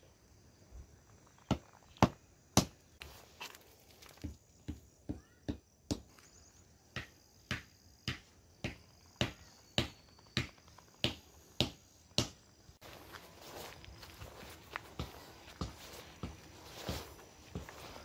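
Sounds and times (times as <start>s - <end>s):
slapping footsteps: 12.2s - 18.0s.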